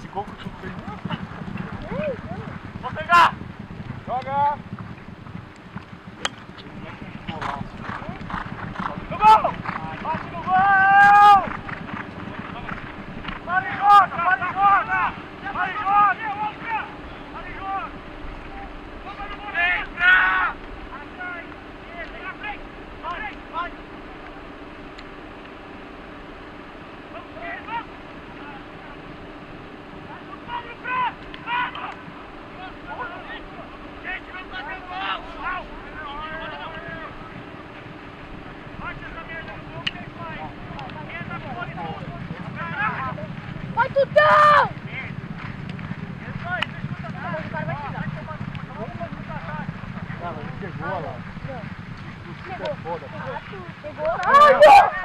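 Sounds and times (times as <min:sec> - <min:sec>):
players shouting calls: 0:00.0 - 0:03.4, 0:06.2 - 0:24.6, 0:27.0 - 0:45.2, 0:45.8 - 0:55.0.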